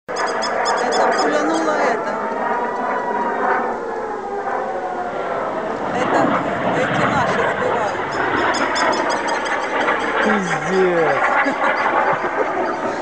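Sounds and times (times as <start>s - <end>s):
civil defense siren wailing: 0.1s - 13.0s
people's voices: 0.8s - 2.2s, 5.8s - 8.1s, 10.2s - 13.0s.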